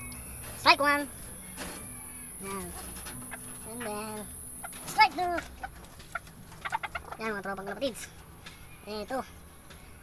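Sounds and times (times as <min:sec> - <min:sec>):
chickens clucking: 0:00.0 - 0:10.0.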